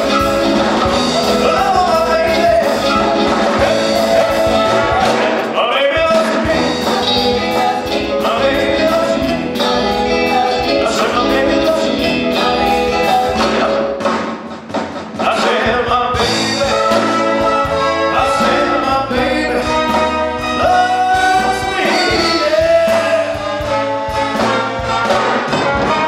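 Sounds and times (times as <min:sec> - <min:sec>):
big band playing dance music: 0:00.0 - 0:26.0.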